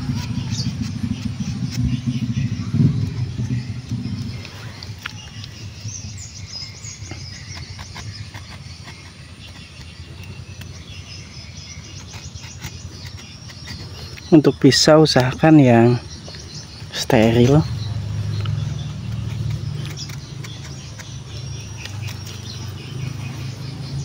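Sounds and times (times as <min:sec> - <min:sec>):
passing vehicle engine hum: 0:00.0 - 0:08.1, 0:15.9 - 0:24.0
knife scraping bark: 0:00.0 - 0:23.8
bird chirps: 0:00.0 - 0:24.0
insect ticking: 0:00.0 - 0:24.0.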